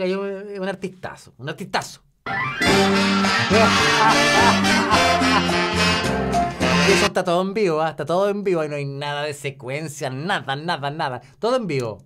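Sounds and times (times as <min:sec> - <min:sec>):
latin dance band music: 0:02.3 - 0:07.2.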